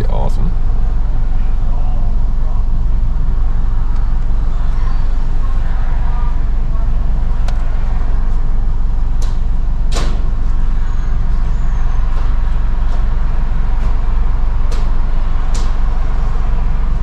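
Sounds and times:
car engine idling: 0:00.0 - 0:17.0.

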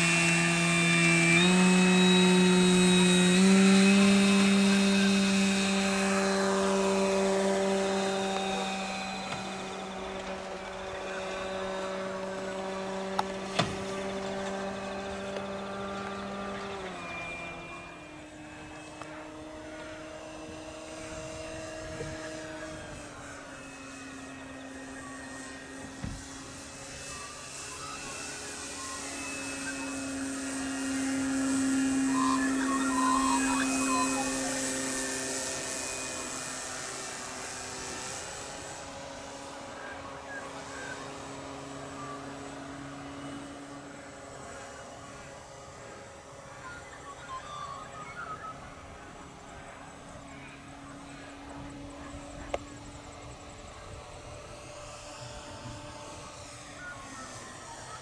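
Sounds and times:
model plane engine droning: 0:00.0 - 0:58.0.

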